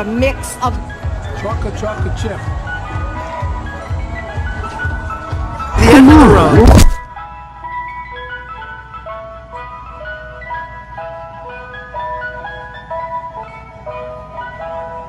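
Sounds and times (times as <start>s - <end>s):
ice cream truck chime melody: 0.0s - 5.8s, 7.1s - 15.0s.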